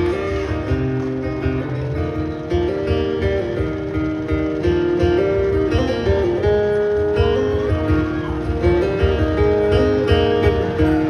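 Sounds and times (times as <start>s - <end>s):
acoustic guitar strumming: 0.0s - 11.0s
held melody line: 0.0s - 11.0s.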